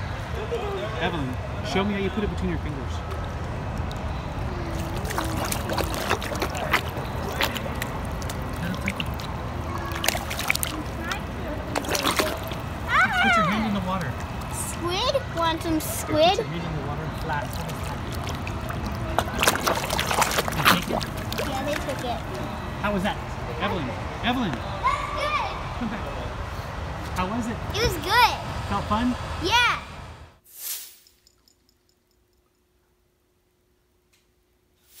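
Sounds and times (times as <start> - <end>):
water splashing and sloshing: 3.1 - 22.5.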